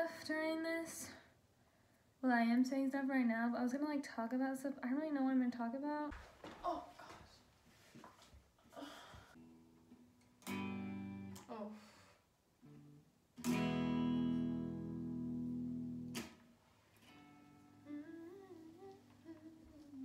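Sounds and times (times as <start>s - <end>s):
electric guitar strummed chords: 10.4s - 11.4s, 12.8s - 16.4s
person humming: 17.9s - 20.0s.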